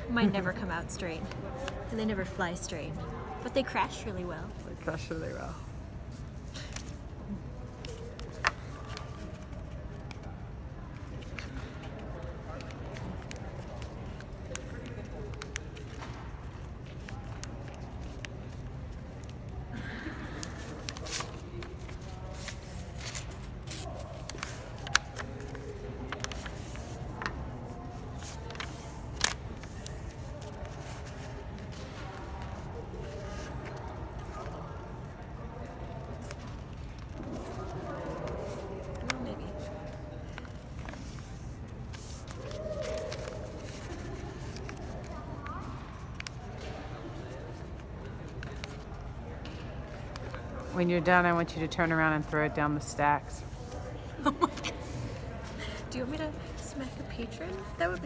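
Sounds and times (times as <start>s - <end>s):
faint background voices: 0.0s - 58.0s
paper being folded and creased: 3.6s - 50.7s, 54.5s - 58.0s
paper snaps: 11.2s - 18.6s, 20.4s - 27.4s, 28.2s - 31.8s.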